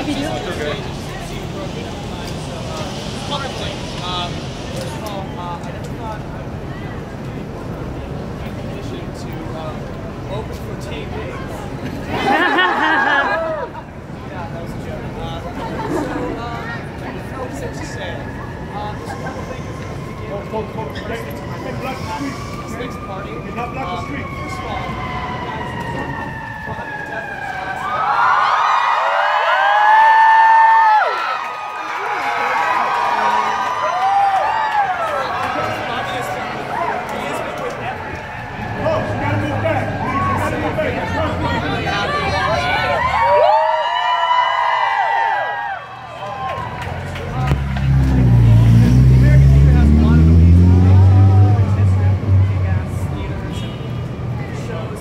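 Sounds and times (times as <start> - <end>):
emergency vehicle siren: 0.0 - 11.4, 15.9 - 55.0
vehicle engine rumble: 0.0 - 12.2, 46.0 - 55.0
crowd calling and chattering: 0.0 - 55.0.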